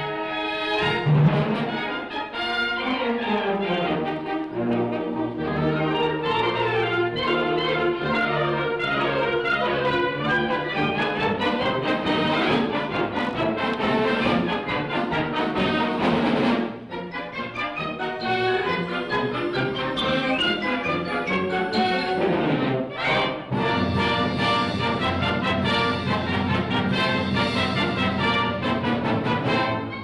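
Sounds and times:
wind band playing: 0.0s - 30.0s.

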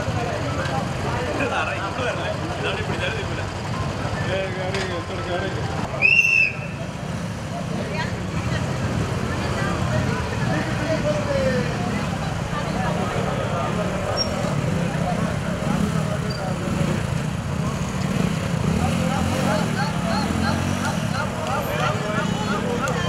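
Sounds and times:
motorcycle engines running low: 0.0s - 6.0s, 6.6s - 23.0s
people chatting: 0.0s - 23.0s.

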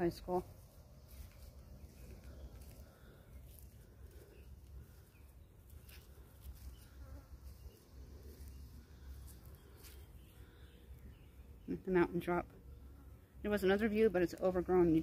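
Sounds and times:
insect buzzing: 5.8s - 10.0s.

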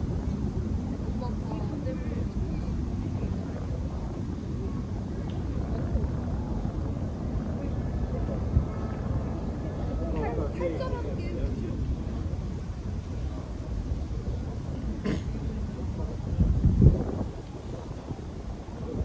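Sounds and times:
people chatting: 0.0s - 19.0s
wind rumbling on microphone: 0.0s - 19.0s.

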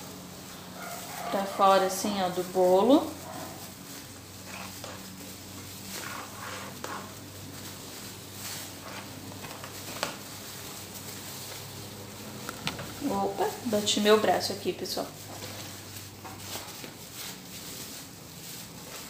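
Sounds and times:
plastic film rustling: 0.0s - 19.0s
steady low hum: 0.0s - 19.0s.

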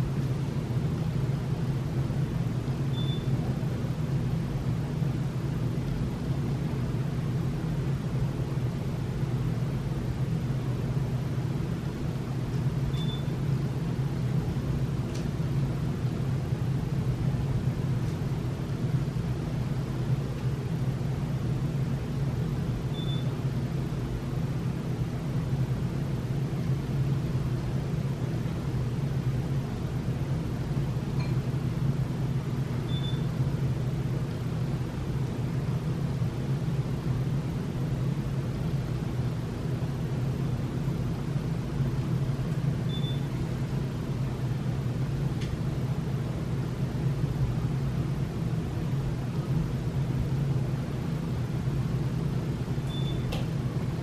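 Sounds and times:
low background hum: 0.0s - 54.0s
short faint high beep: 2.9s - 3.3s, 12.9s - 13.3s, 23.0s - 23.3s, 32.9s - 33.3s, 42.9s - 43.3s, 52.9s - 53.3s.

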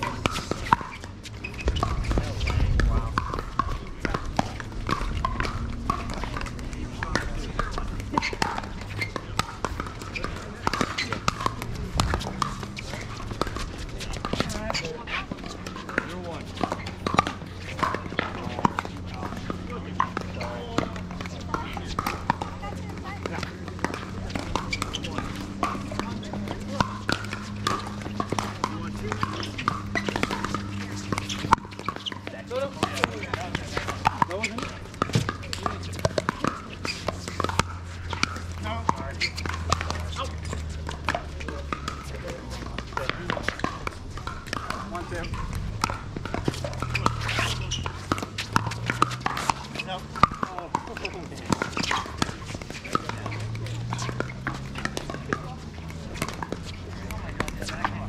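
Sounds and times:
paddles hitting balls: 0.0s - 58.0s
players' voices: 0.0s - 58.0s.

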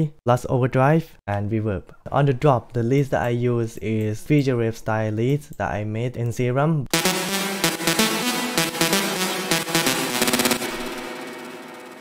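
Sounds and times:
sawtooth synth lead stabs: 6.9s - 12.0s.

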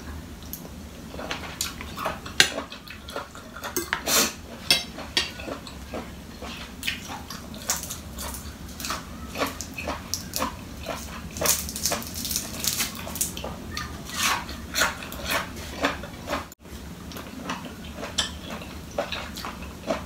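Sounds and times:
wet chewing: 4.6s - 20.0s
crisp clicks and crackles: 7.6s - 13.5s
lettuce leaves tearing: 7.7s - 13.4s.

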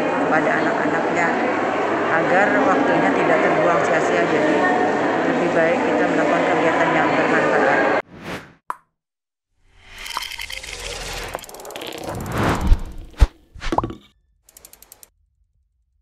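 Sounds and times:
whoosh: 10.8s - 13.7s
click: 14.5s - 15.1s
quick ticks: 14.5s - 15.1s.

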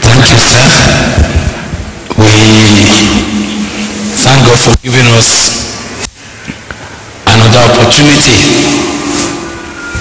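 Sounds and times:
amplified voice speaking: 0.0s - 1.3s, 2.1s - 5.8s, 7.2s - 9.0s.

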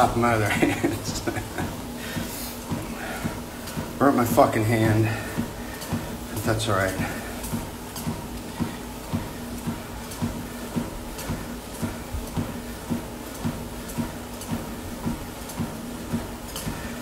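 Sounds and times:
footfalls on exercise machine: 0.0s - 17.0s
steady low hum: 0.0s - 17.0s.

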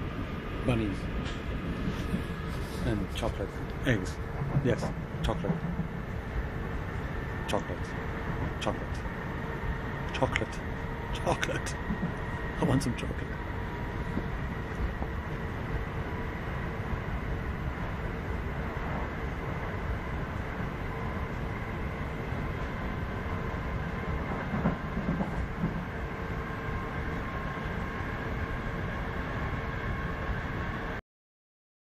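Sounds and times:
faint steady whine: 0.0s - 31.0s
train wheels rumbling on rails: 0.0s - 31.0s
train knocks: 3.0s - 16.9s, 17.5s - 27.3s.

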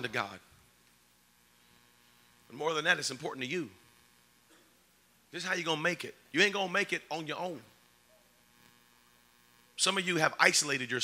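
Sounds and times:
faint electrical hum: 0.0s - 11.0s
man speaking: 2.5s - 3.8s, 5.3s - 7.7s, 9.8s - 11.0s.

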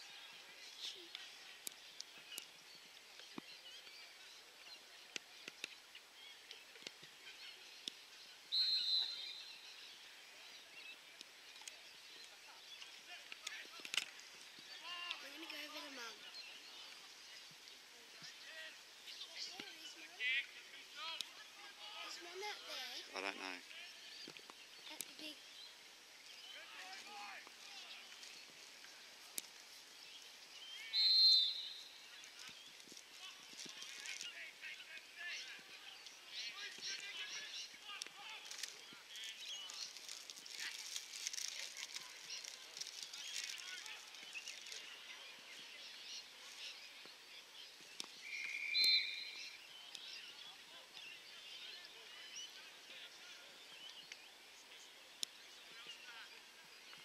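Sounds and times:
birdsong: 0.0s - 57.0s
faint distant voices: 0.0s - 57.0s
whistle blown: 8.5s - 9.3s, 30.9s - 31.8s, 48.3s - 49.4s.

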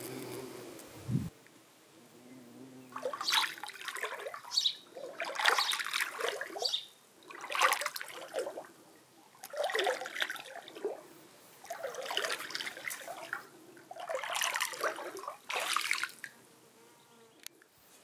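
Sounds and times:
water splashing around a foot: 2.9s - 8.7s, 9.4s - 11.0s, 11.6s - 16.3s.

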